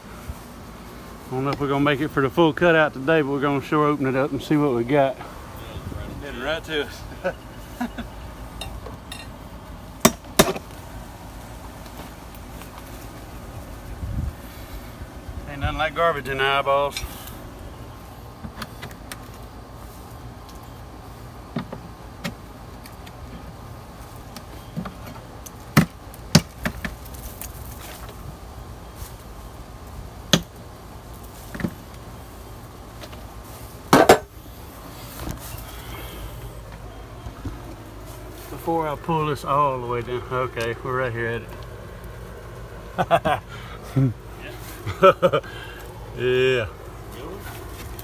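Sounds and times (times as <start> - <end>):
low background noise: 0.0 - 48.0.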